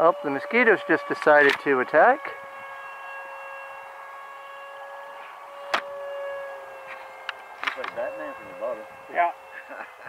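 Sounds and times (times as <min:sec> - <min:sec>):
electric ducted fan whining: 0:00.0 - 0:10.0.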